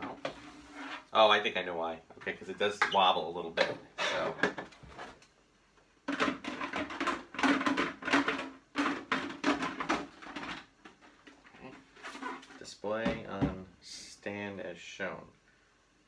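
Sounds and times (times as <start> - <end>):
plastic helmet knocking and rubbing: 3.6 - 5.2, 6.1 - 13.7
muffled man's voice: 12.6 - 15.3.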